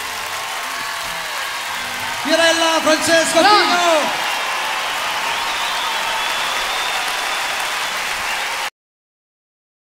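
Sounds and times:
large audience applauding: 0:00.0 - 0:08.7.

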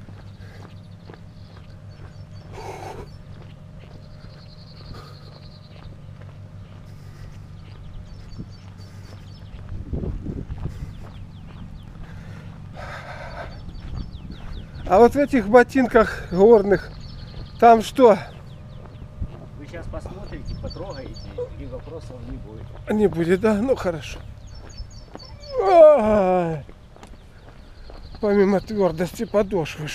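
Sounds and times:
diesel engine idling: 0:00.0 - 0:29.9
footsteps on gravel: 0:00.0 - 0:29.9.

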